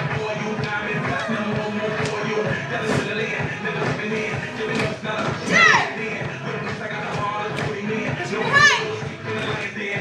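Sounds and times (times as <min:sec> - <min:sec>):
hip-hop dance music: 0:00.0 - 0:10.0
girl yelling: 0:08.4 - 0:08.9.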